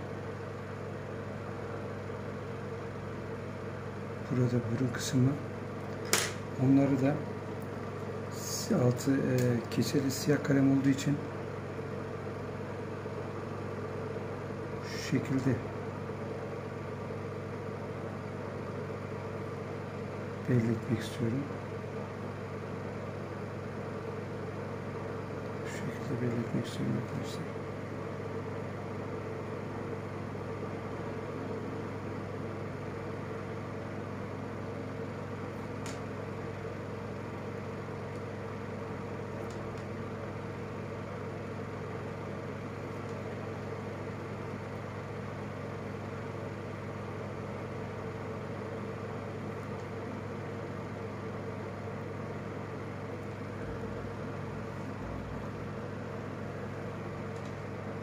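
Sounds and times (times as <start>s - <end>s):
steady mechanical hum: 0.0s - 58.0s.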